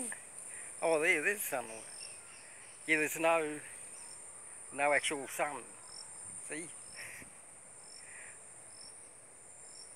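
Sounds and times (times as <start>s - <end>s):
insects shrilling: 0.0s - 9.9s.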